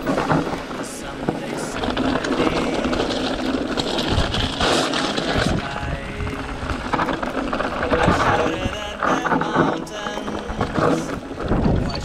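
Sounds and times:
bike rattling: 0.0 - 12.0
faint background music: 0.0 - 12.0
tyres crunching on gravel: 0.0 - 12.0
wind on microphone: 0.0 - 12.0.

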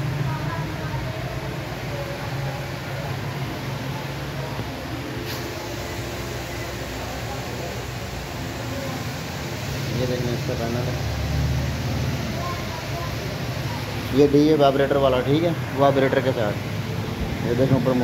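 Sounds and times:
faint voices: 0.0 - 18.0
machinery humming: 0.0 - 18.0.

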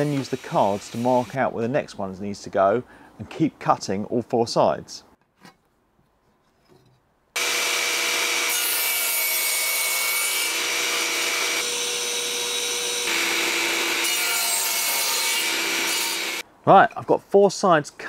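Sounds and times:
table saw cutting wood: 7.4 - 16.4.

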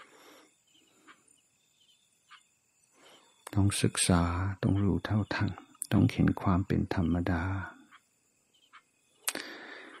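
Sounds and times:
mouth click: 9.2 - 9.5
man breathing in: 9.3 - 10.0.

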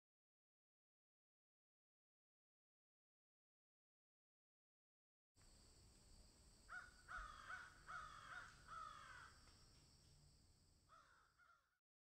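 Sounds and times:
bird calling: 6.7 - 9.3.

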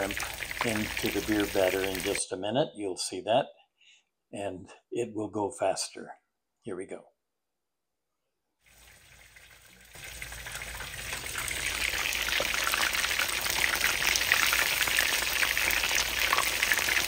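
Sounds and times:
shrimp frying in hot oil: 0.0 - 2.2, 8.6 - 17.0.

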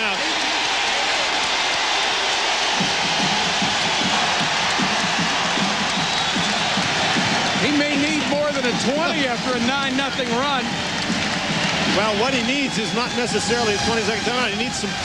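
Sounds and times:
crowd cheering roar: 0.0 - 15.0.

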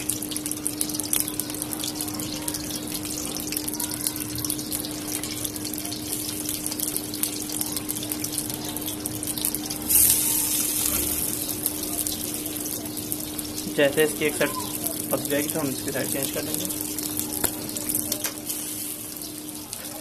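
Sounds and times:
food sizzling in oil: 0.0 - 20.0.

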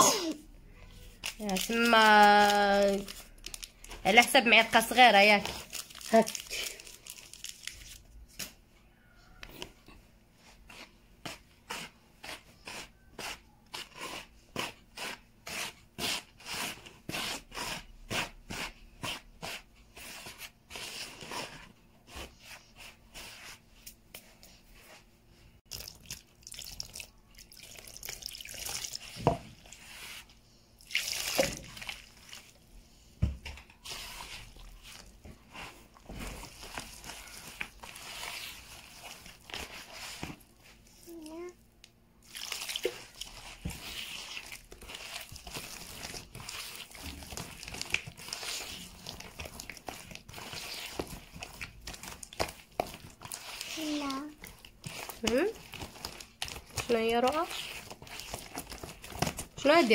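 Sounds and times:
crinkling rustle: 1.1 - 8.5
hand squelching wet batter: 24.8 - 32.8, 33.8 - 41.0, 41.8 - 59.9.

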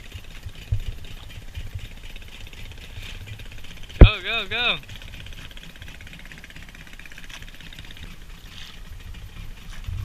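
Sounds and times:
small boat engine idling: 0.0 - 10.0.

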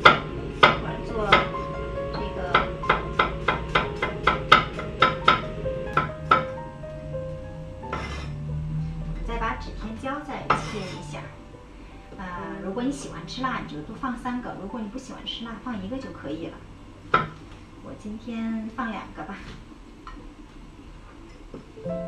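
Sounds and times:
background music: 0.0 - 19.0, 21.7 - 22.0.

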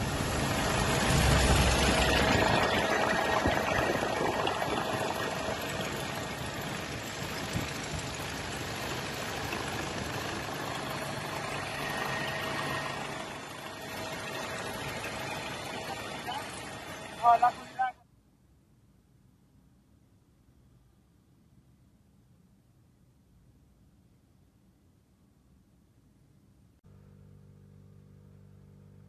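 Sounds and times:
helicopter engine and rotor: 0.0 - 17.9.

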